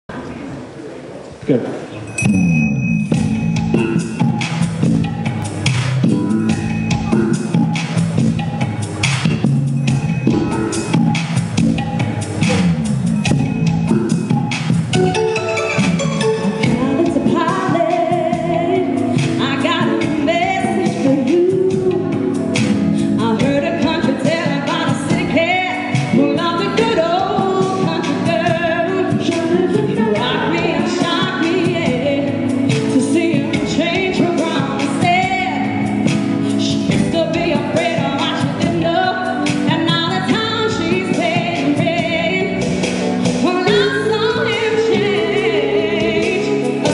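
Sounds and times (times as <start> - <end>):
keyboards: 0.3 - 46.9
bass guitar: 2.2 - 24.2
woman singing lead: 15.0 - 46.9
woman singing backing vocals: 16.6 - 22.4, 23.1 - 35.9, 36.6 - 42.6, 43.4 - 46.9.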